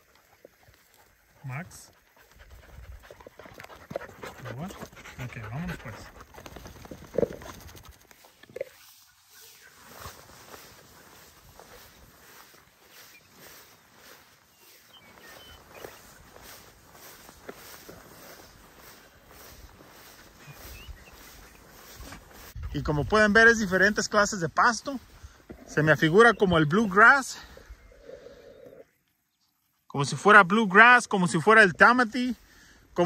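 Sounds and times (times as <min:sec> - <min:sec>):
footsteps swishing through grass: 0:06.2 - 0:24.3.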